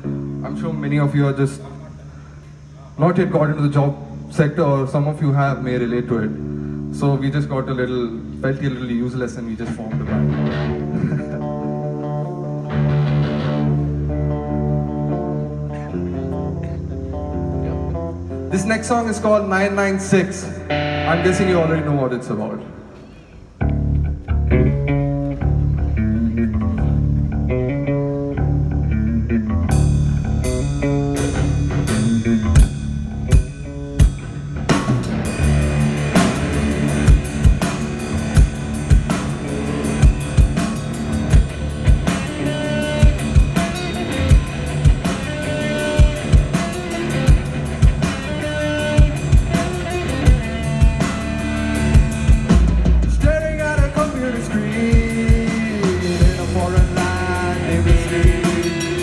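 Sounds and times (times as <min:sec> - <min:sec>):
live rock band playing: 0:00.0 - 0:02.8, 0:04.9 - 0:59.0
electric guitar riff: 0:00.0 - 0:03.4, 0:05.3 - 0:59.0.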